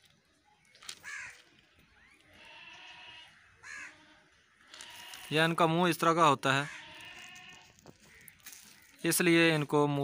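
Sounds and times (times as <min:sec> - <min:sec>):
faint animal calls: 0:01.0 - 0:05.3.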